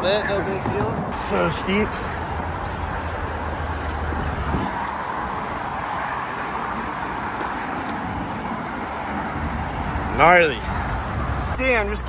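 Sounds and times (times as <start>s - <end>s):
road traffic roar: 0.0s - 12.0s.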